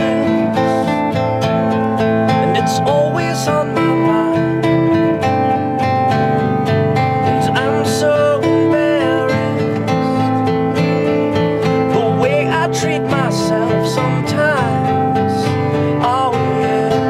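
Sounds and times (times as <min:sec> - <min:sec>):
acoustic guitars strumming chords: 0:00.0 - 0:17.0
sliding bending lead guitar notes: 0:00.0 - 0:17.0.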